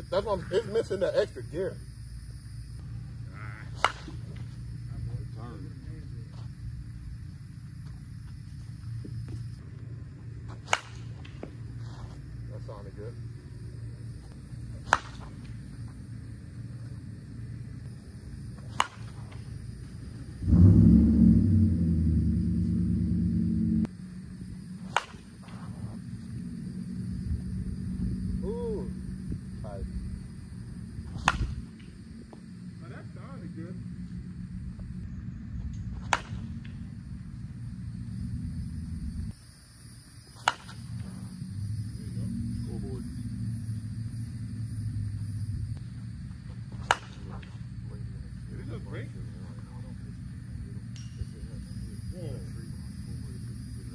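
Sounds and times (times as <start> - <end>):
bat hitting softball cracks: 3.7 - 4.5, 10.5 - 11.6, 14.8 - 15.9, 18.5 - 19.6, 24.8 - 25.8, 31.0 - 32.0, 35.7 - 36.9, 40.3 - 41.1, 46.7 - 47.7
steady low rumble: 19.3 - 39.3, 40.8 - 53.9.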